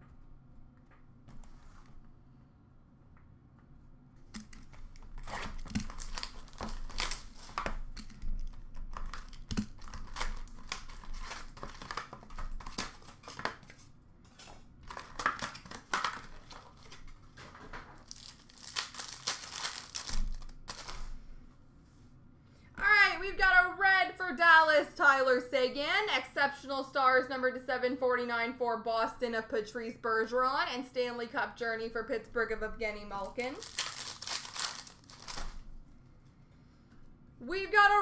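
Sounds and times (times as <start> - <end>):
card packs being torn open: 4.4 - 17.1, 17.9 - 21.1, 33.3 - 35.6
wrappers crinkling: 4.6 - 21.2, 33.2 - 35.7
person speaking: 22.8 - 33.8.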